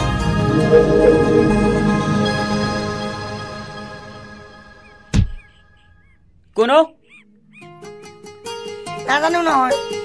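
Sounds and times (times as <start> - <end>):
music notes: 0.2 - 3.2.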